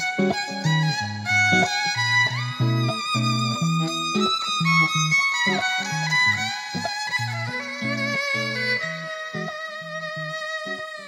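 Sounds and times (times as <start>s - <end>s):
backing track with bass line: 0.0s - 11.0s
electric violin melody: 0.0s - 11.0s.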